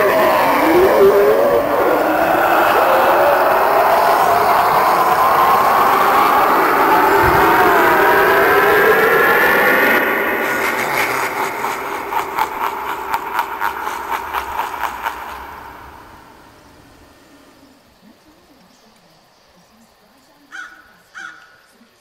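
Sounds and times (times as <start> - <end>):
rushing whoosh with ghostly tones: 0.0 - 18.0
fast uneven fluttering rattle: 10.0 - 18.0.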